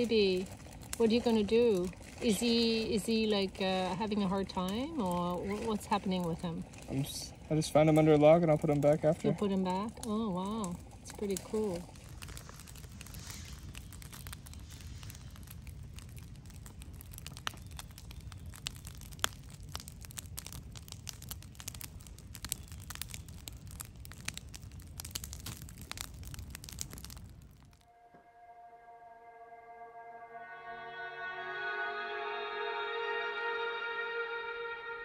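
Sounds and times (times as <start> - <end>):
campfire crackling and popping: 0.0 - 27.9
soft music with held notes: 27.9 - 35.0.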